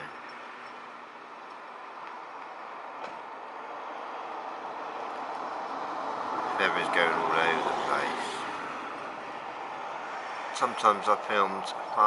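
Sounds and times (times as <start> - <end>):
passing vehicles rushing: 0.0 - 12.0.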